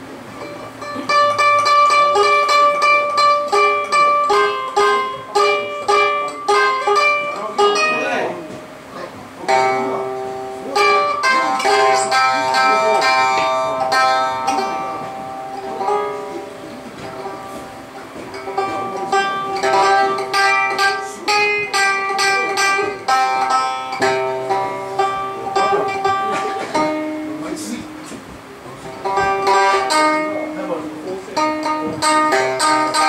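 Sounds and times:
plucked three-stringed instrument: 0.0 - 33.0.

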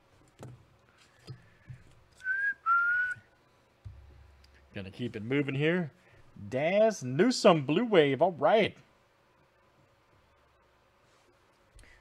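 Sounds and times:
person whistling two notes: 2.2 - 3.3.

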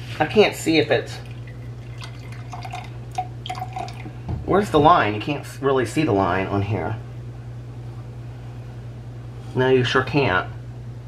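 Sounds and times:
liquid trickling into plastic: 1.2 - 4.1.

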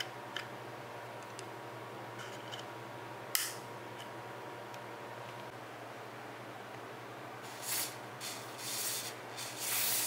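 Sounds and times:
aerosol spray hisses: 7.5 - 10.0.

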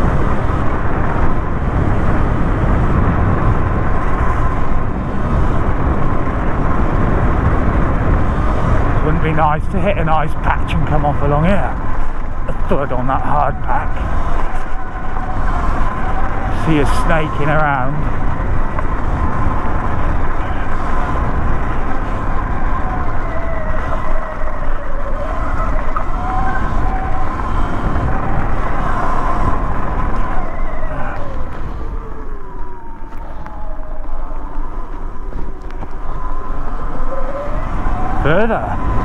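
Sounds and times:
wind and tyre rumble: 0.0 - 39.0.

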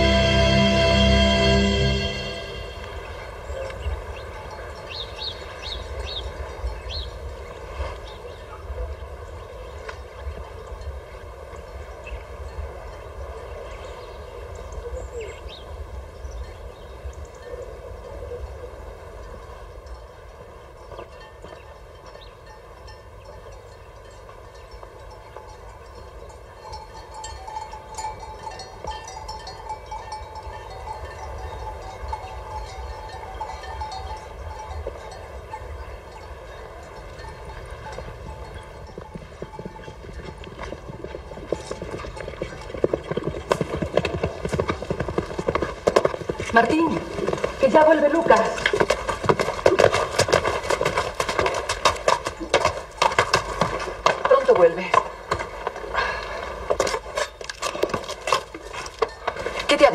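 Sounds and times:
horse hooves clip-clopping: 0.0 - 59.9.

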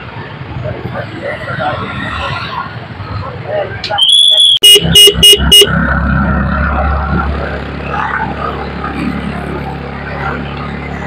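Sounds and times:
vehicle engine and road rumble: 0.0 - 11.0
vehicle horn toots: 4.0 - 5.9.

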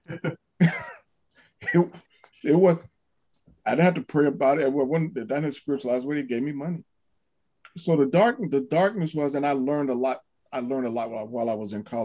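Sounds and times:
person laughing: 0.0 - 1.0, 1.6 - 2.0
person talking: 1.6 - 2.9, 3.7 - 6.8, 7.7 - 12.0.

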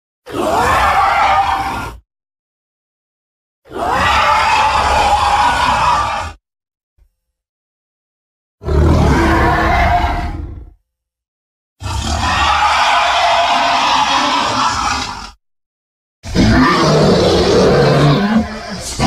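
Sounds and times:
dinosaur roars: 0.3 - 2.0, 3.7 - 6.4, 8.6 - 10.8, 11.8 - 15.4, 16.2 - 19.0.

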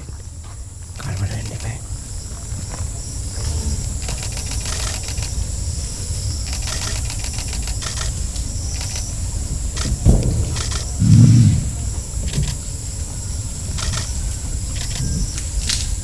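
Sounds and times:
high-pitched insect drone: 0.0 - 16.0
low rumble: 9.3 - 15.6.

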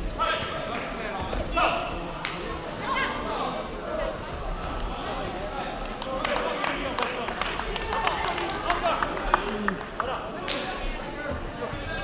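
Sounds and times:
crowd chatter in hall: 0.0 - 12.0.

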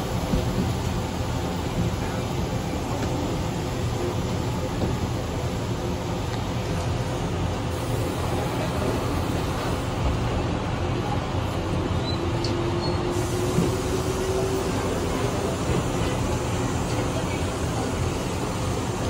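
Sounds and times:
train running rumble: 0.0 - 19.0.

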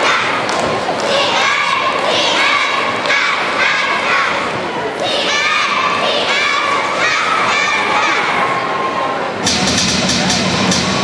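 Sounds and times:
cheerleaders shouting in unison: 0.0 - 9.4.

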